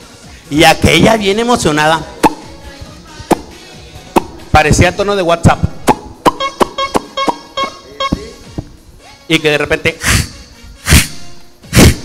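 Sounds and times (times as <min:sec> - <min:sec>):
faint background music: 0:00.0 - 0:12.0
mouth pops with pressed lips: 0:02.2 - 0:02.5, 0:03.3 - 0:03.5, 0:04.1 - 0:04.4, 0:05.8 - 0:07.4.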